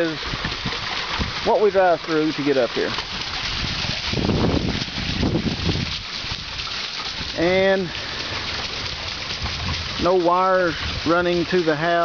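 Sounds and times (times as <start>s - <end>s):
creek rushing: 0.0s - 12.0s
low water rumbling: 0.0s - 12.0s.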